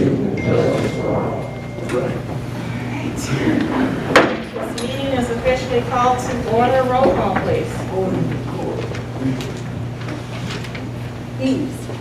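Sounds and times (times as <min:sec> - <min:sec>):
chairs shuffling: 0:01.8 - 0:12.0.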